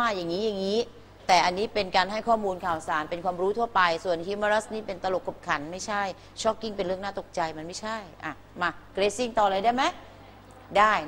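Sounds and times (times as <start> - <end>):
woman speaking: 0.0 - 11.0.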